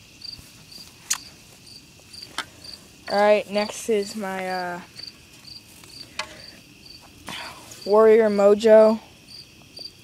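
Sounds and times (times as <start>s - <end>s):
crickets chirping: 0.0s - 10.0s
sharp clicks: 1.1s - 1.3s.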